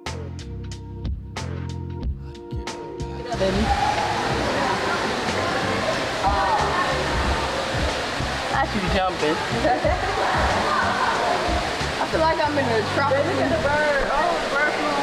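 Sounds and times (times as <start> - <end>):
waterfall rushing: 3.3 - 15.0.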